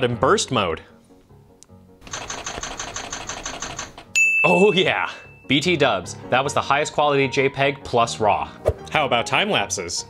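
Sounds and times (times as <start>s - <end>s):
rapid camera shutter clicks: 2.0s - 4.1s.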